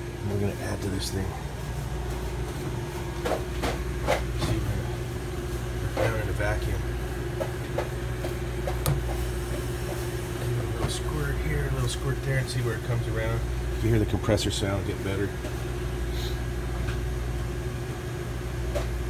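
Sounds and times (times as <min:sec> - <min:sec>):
refrigeration compressor humming: 0:00.0 - 0:19.0.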